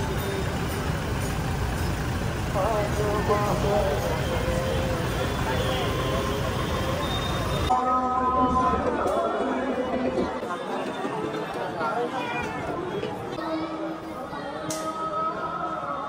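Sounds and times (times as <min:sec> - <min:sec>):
low rumble of slow cars: 0:00.0 - 0:07.7
crowd chatter: 0:00.0 - 0:16.0.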